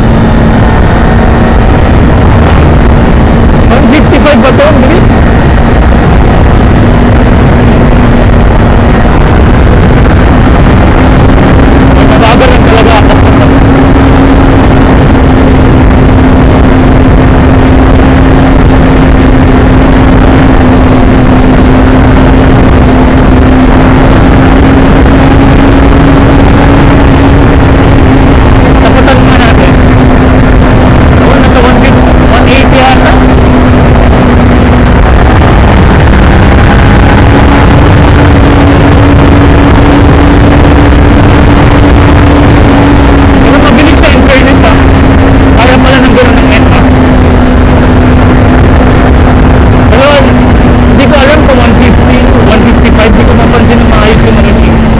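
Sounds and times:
motorcycle engine cruising: 0.0s - 54.9s
wind rumble on microphone: 0.0s - 54.9s.

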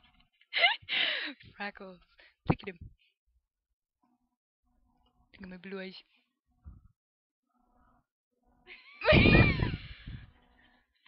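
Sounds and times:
girls laughing: 8.7s - 10.2s.

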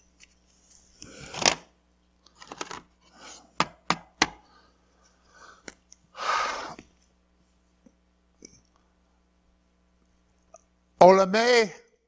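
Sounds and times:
soft rustle: 0.0s - 1.0s.

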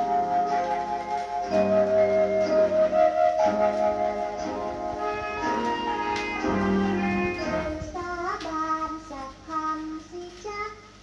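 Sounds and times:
band accompaniment: 0.0s - 7.8s.

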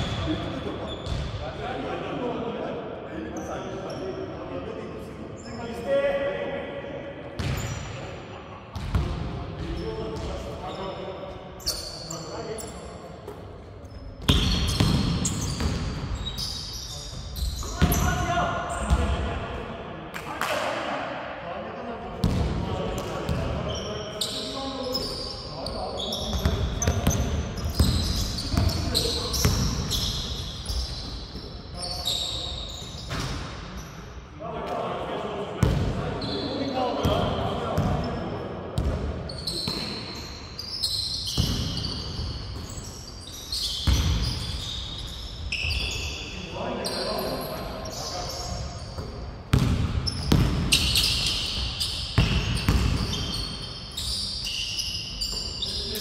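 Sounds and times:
sneakers squeaking: 0.0s - 1.5s, 3.3s - 4.3s, 7.4s - 8.1s, 8.8s - 19.2s, 22.2s - 34.1s, 35.6s - 56.0s.

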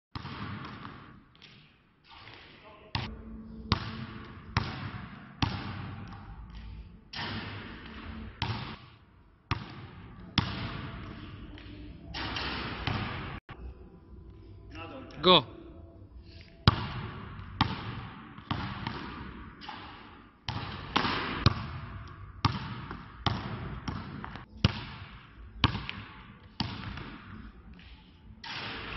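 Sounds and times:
basketball bouncing on gym floor: 0.2s - 1.6s, 3.7s - 6.3s, 7.1s - 8.9s, 9.5s - 13.4s, 16.7s - 27.3s.

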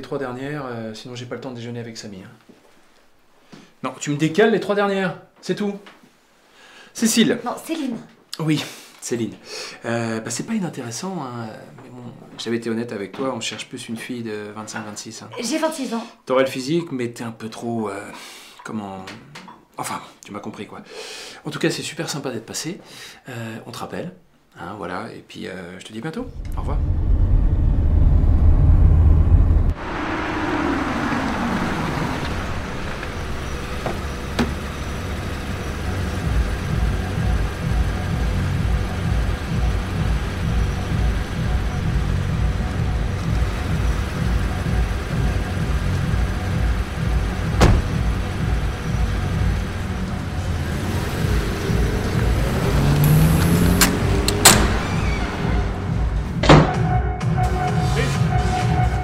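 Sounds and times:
car driving past: 26.2s - 56.5s
car engine rumbling: 26.2s - 59.0s
low pulsing music score: 35.1s - 59.0s
sharp clicks: 53.0s - 54.8s.

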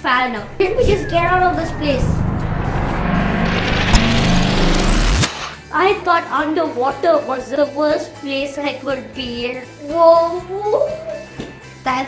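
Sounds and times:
low drone: 0.0s - 5.8s
rumbling whoosh: 0.0s - 5.9s.

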